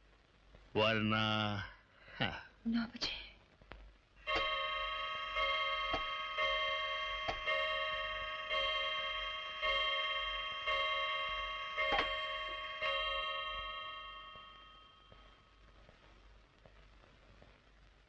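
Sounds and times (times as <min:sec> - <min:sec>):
clock chime striking: 0:04.2 - 0:15.2.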